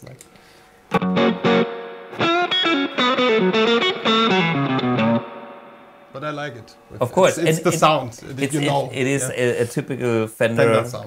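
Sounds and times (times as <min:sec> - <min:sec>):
overdriven electric guitar licks: 0:00.9 - 0:06.2.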